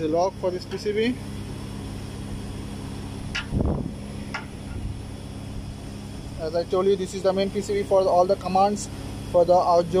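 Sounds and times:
air conditioning hum: 0.0s - 10.0s.

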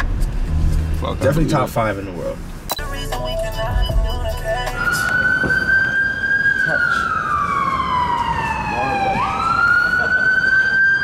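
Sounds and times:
emergency vehicle siren wailing: 3.2s - 11.0s.

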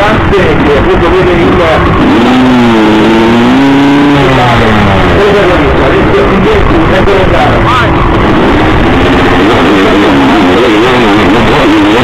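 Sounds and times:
motorcycle engine revving high: 0.0s - 12.0s.

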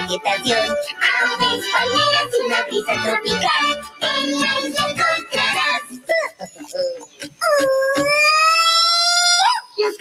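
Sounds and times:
children's song through speakers: 0.0s - 8.2s.

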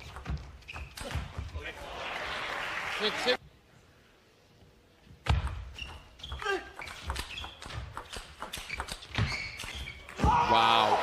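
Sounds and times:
short high squeaks: 5.7s - 10.1s.

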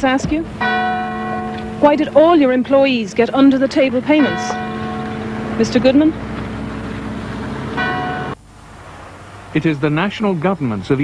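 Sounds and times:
car engine running: 0.0s - 8.4s
street noise: 0.0s - 11.0s.

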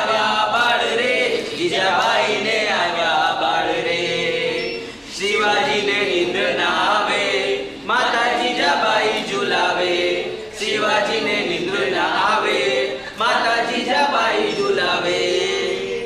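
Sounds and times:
group singing unaccompanied: 0.0s - 16.0s.

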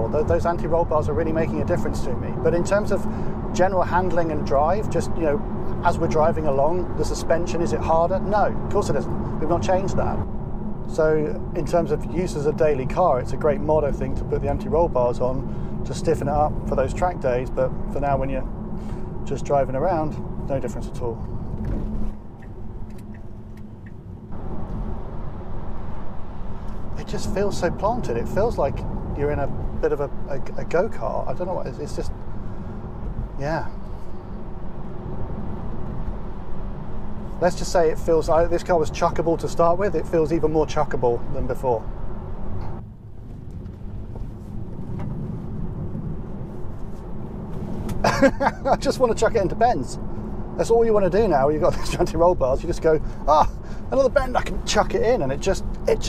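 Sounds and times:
road and tyre noise inside car: 0.0s - 56.0s.

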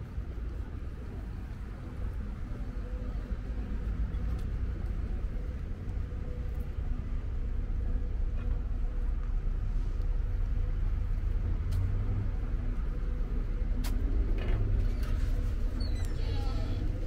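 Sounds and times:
city traffic rumble: 0.0s - 17.0s.

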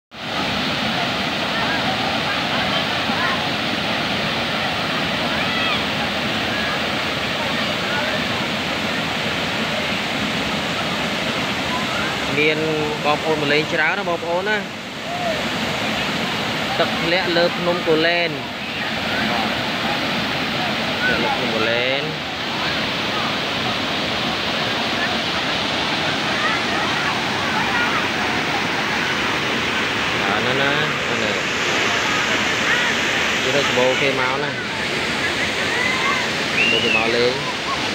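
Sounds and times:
waterfall rushing over rocks: 0.2s - 37.9s
faint crowd chatter: 18.4s - 37.9s.

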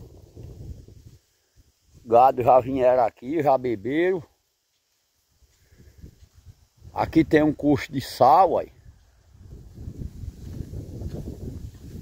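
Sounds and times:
footsteps on sandy ground: 0.0s - 3.0s, 3.6s - 12.0s.

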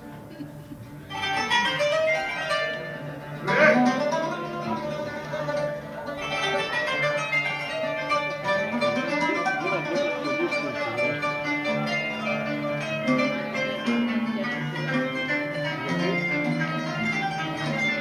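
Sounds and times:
live plucked string music: 0.0s - 18.0s.

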